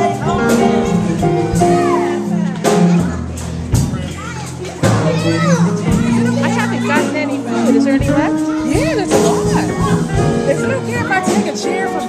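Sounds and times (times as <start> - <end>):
children shouting and chattering: 0.0 - 12.0
keyboard: 0.0 - 12.0
upright bass: 0.0 - 12.0.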